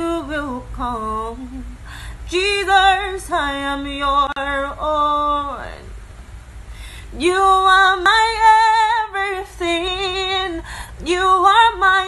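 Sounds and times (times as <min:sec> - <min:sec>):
woman singing unaccompanied: 0:00.0 - 0:06.0, 0:07.1 - 0:12.0.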